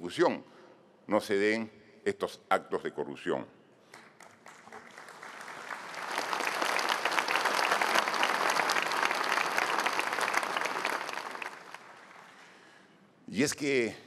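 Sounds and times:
audience applauding: 4.2 - 12.6.

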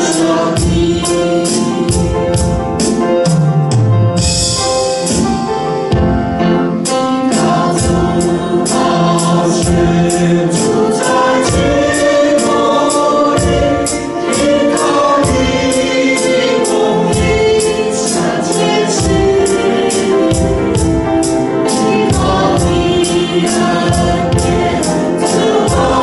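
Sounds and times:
voices singing worship song: 0.0 - 3.0, 6.7 - 26.0
steady drum beat: 0.0 - 26.0.

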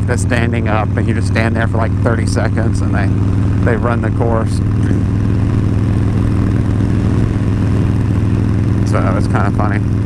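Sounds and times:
motorcycle engine drone: 0.0 - 10.0
road noise: 0.0 - 10.0.

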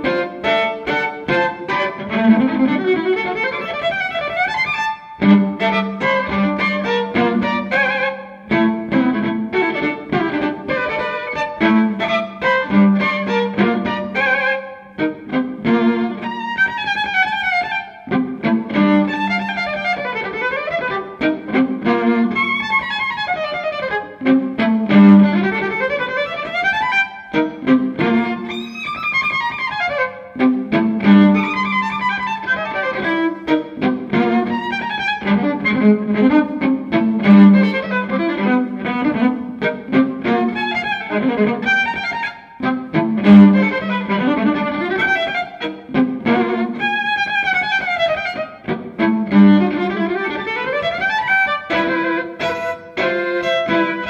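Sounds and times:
solo violin playing quick runs: 0.0 - 54.0.

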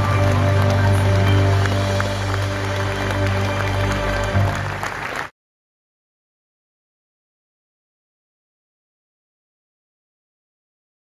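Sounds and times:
audience applause: 0.0 - 5.3
live band holding a chord: 0.0 - 5.3.

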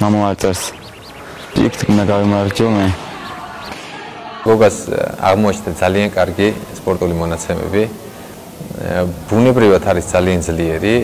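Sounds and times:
man speaking: 1.5 - 3.0.

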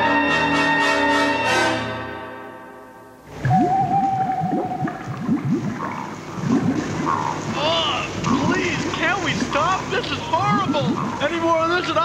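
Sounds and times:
rising bubbling bloops: 3.3 - 11.4
eerie wavering note: 3.4 - 7.3.

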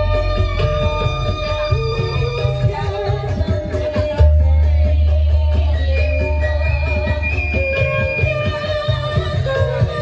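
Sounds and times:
heavy bass music through pa system: 0.0 - 10.0.

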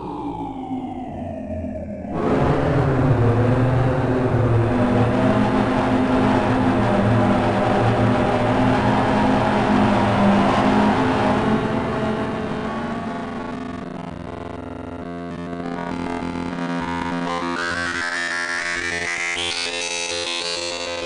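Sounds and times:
harsh synthesizer noise drone: 0.0 - 21.0.

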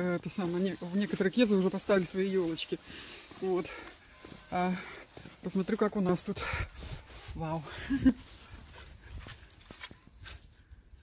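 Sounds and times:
wind rumbling on microphone: 6.4 - 9.4.

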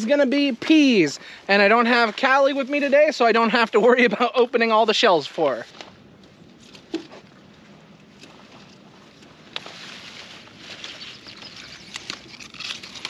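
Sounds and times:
pea vines rustling: 0.0 - 6.9, 8.3 - 13.0
small sharp clicks: 11.8 - 13.0.

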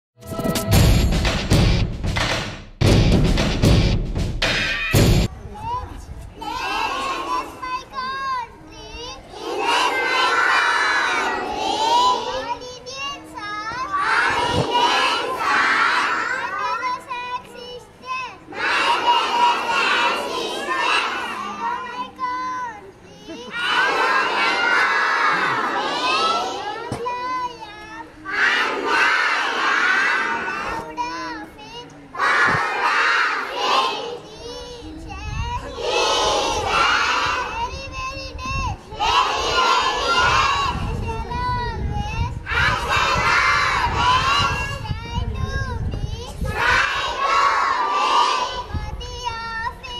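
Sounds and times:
children calling out together: 4.7 - 49.9.

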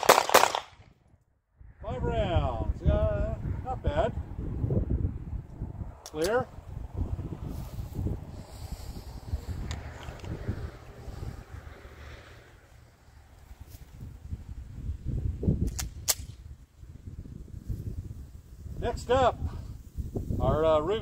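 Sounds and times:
wind buffeting microphone: 0.8 - 12.7, 13.4 - 21.0
pistol clicks: 15.6 - 16.4.

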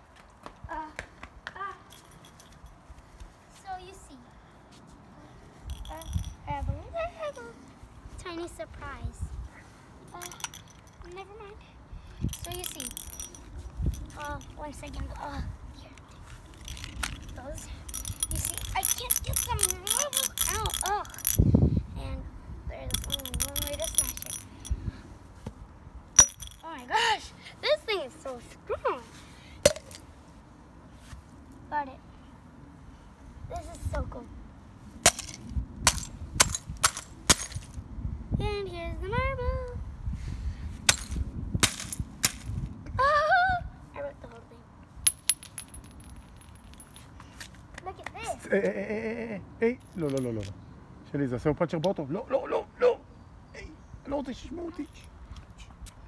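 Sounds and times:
thin high ringing: 1.9 - 2.8, 5.6 - 6.5, 10.1 - 11.2, 12.1 - 14.9, 16.4 - 21.5, 22.8 - 24.9, 26.2 - 27.0, 45.0 - 47.2
glass marble clinking in bottle: 5.7 - 6.4, 10.1 - 11.1, 12.2 - 14.6, 16.6 - 21.4, 22.8 - 24.8, 26.2 - 26.9, 45.1 - 47.0, 49.8 - 50.5.

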